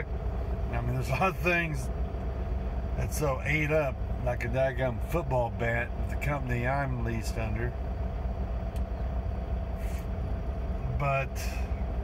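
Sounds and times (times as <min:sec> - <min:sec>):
diesel truck engine rumble: 0:00.0 - 0:12.0
steady hum: 0:00.0 - 0:12.0.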